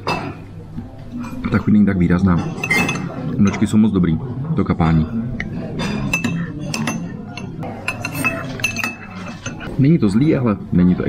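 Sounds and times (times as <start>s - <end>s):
spoon clinking against porcelain cup: 2.4s - 3.6s, 5.8s - 9.7s.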